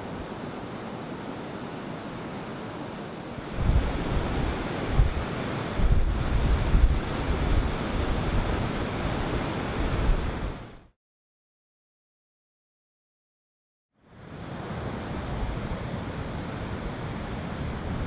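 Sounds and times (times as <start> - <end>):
sea surf breaking: 0.0 - 10.9
wind buffeting microphone: 3.4 - 10.9.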